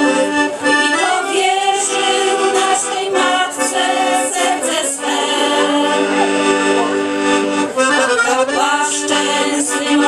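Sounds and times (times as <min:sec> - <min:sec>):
women's group singing: 0:00.0 - 0:06.3, 0:08.2 - 0:10.0.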